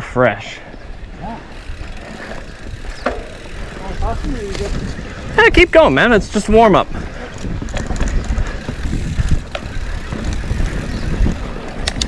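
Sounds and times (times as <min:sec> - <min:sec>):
tyres rumbling on dirt trail: 0:00.0 - 0:12.0
wind on microphone: 0:00.8 - 0:05.7, 0:06.4 - 0:12.0.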